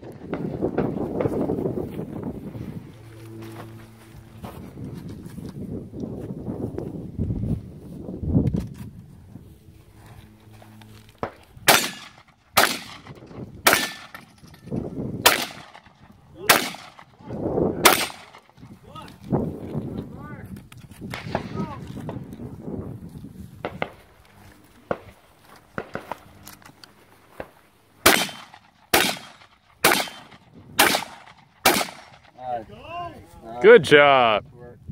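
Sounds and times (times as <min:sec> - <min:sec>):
shotgun shots: 0:11.2 - 0:14.4, 0:15.2 - 0:17.2, 0:17.8 - 0:18.6, 0:28.0 - 0:32.4.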